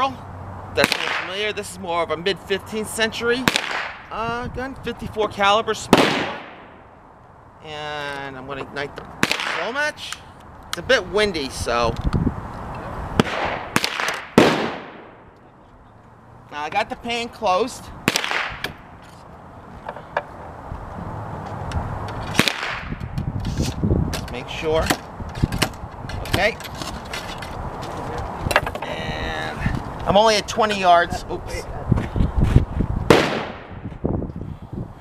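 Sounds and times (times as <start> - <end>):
gunshots with echo: 0.8 - 1.4, 3.4 - 4.1, 5.9 - 6.8, 9.2 - 9.7, 13.2 - 15.3, 18.1 - 18.6, 22.3 - 23.0, 33.1 - 33.7
wind rumble on microphone: 4.0 - 5.3, 10.4 - 13.8, 17.8 - 35.0
gun handling on wooden rest: 19.8 - 20.5, 28.5 - 28.9.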